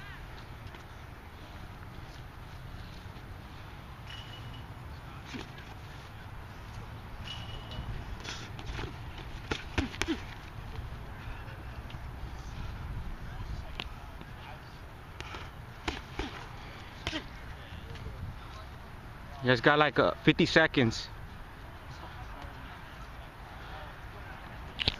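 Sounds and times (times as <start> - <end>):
boxing gloves smacking: 8.2 - 10.4, 15.2 - 17.3.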